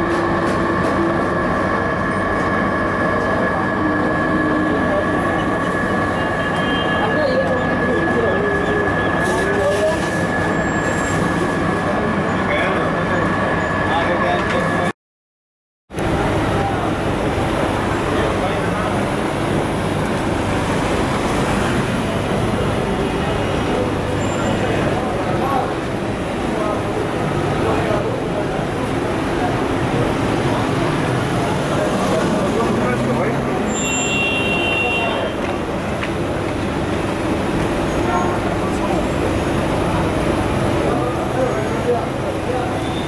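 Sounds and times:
city street traffic: 0:00.0 - 0:14.9, 0:15.9 - 0:43.0
indistinct voices: 0:00.0 - 0:14.9.

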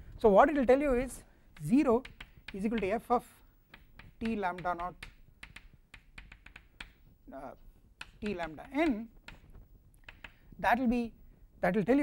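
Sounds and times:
chalk tapping and scraping: 0:01.0 - 0:07.1, 0:08.0 - 0:10.5.

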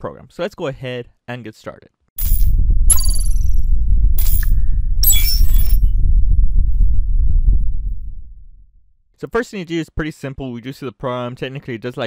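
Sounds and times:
deep bass rumble: 0:02.2 - 0:08.9
chime-like ringing: 0:04.2 - 0:05.9.

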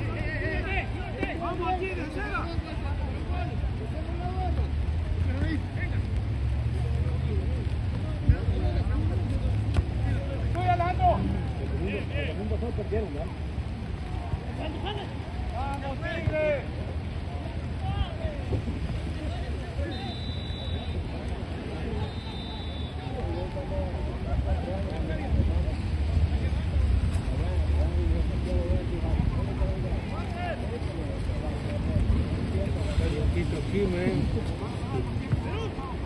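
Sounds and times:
wind rumble on microphone: 0:16.7 - 0:19.9, 0:23.0 - 0:36.0
high whistle tones: 0:19.9 - 0:21.0, 0:22.0 - 0:22.9.

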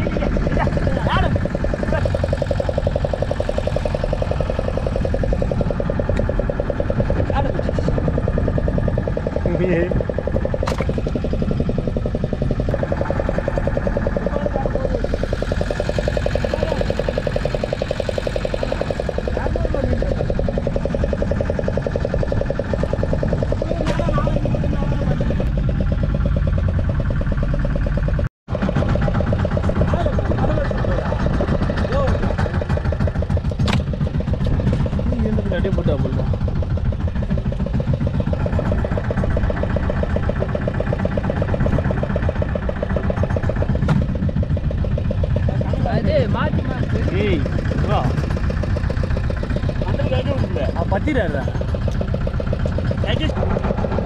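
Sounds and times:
men talking: 0:00.0 - 0:02.2, 0:09.4 - 0:10.0, 0:19.2 - 0:20.3, 0:23.6 - 0:25.3, 0:29.8 - 0:32.4, 0:35.0 - 0:36.4, 0:45.4 - 0:48.5, 0:49.6 - 0:51.8, 0:52.7 - 0:53.4
boat engine running: 0:00.0 - 0:54.0.

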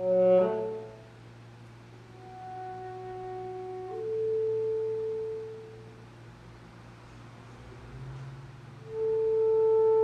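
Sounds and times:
alto saxophone held notes: 0:00.0 - 0:01.2, 0:02.1 - 0:06.0, 0:08.8 - 0:10.0.

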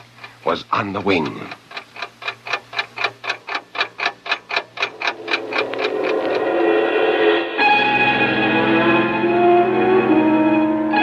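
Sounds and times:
alarm clock ticking: 0:00.0 - 0:08.8
music: 0:05.0 - 0:11.0.

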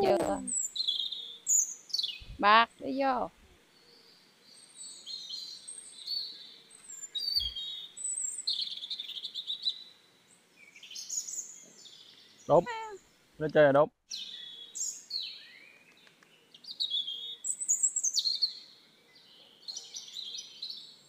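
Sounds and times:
birds chirping and singing: 0:00.0 - 0:10.0, 0:14.1 - 0:21.0.

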